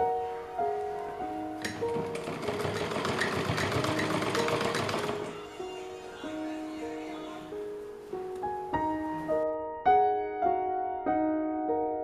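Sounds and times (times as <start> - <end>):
soft piano music: 0.0 - 12.0
sewing machine stitching: 1.7 - 5.4.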